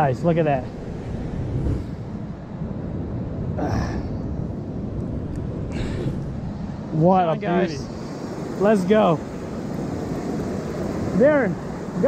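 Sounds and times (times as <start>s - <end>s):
ocean surf washing: 0.0s - 12.0s
wind buffeting microphone: 0.0s - 12.0s.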